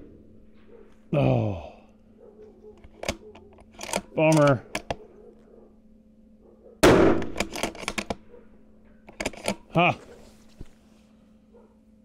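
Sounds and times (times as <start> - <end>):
rifle bolt clicking: 2.8 - 5.0, 6.9 - 8.2, 9.0 - 9.7
rifle shot: 6.8 - 8.3.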